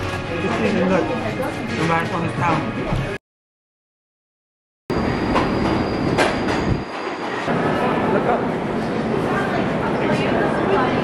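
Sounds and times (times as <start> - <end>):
subway train rumbling past: 4.9 - 11.0.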